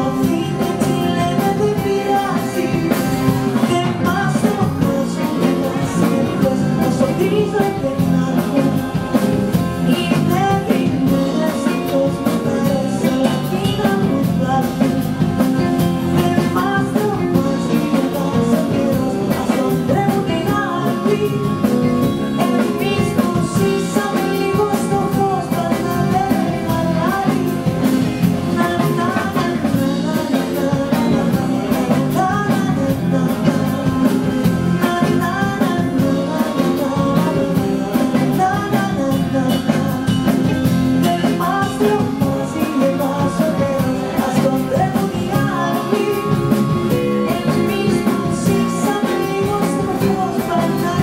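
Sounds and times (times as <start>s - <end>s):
accordion: 0.0s - 51.0s
bass: 0.0s - 51.0s
drum kit beat: 0.0s - 51.0s
electric guitar: 0.0s - 51.0s
woman singing: 0.0s - 51.0s.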